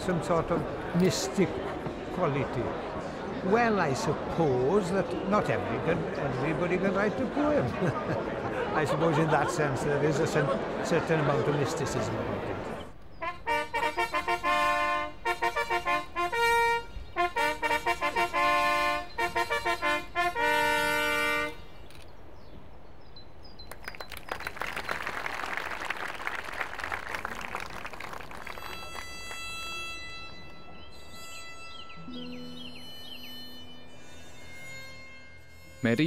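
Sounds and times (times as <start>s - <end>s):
trumpet fanfare: 13.2s - 21.7s
soft sustained music: 29.2s - 36.0s.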